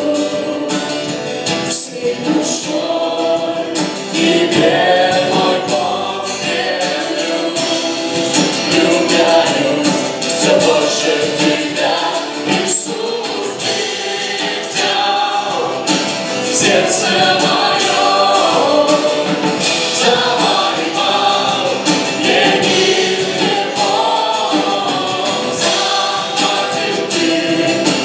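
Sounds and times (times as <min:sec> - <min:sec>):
bass: 0:00.0 - 0:28.0
drums: 0:00.0 - 0:28.0
keyboard: 0:00.0 - 0:28.0
strummed acoustic guitar: 0:00.0 - 0:28.0
woman and men singing: 0:00.0 - 0:28.0.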